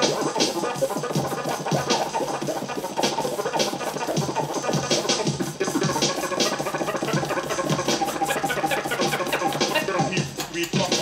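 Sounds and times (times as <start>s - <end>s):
vinyl record scratching: 0.0s - 11.0s.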